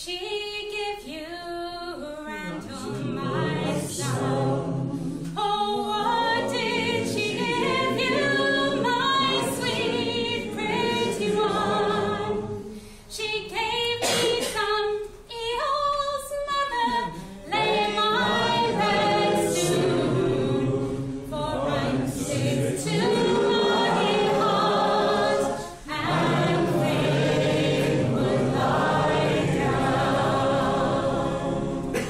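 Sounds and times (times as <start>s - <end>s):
woman singing: 0.0s - 4.1s, 13.1s - 18.3s
voices singing in chorus: 2.3s - 12.9s, 16.8s - 32.0s.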